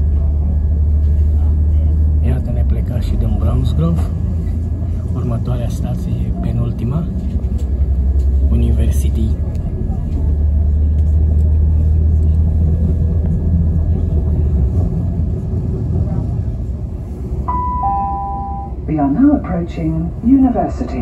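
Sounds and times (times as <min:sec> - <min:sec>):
train rumbling: 0:00.0 - 0:21.0
two-note chime: 0:17.5 - 0:18.8.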